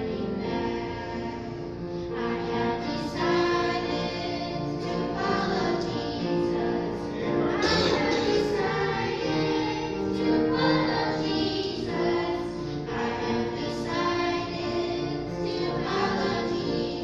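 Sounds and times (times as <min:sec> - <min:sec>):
children singing in unison: 0:00.0 - 0:17.0.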